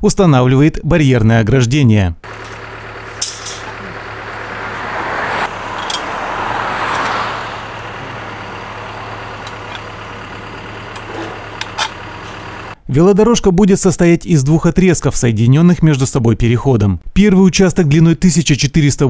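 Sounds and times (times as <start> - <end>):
diesel engine idling: 2.2 - 12.8
vehicle passing: 2.2 - 12.8.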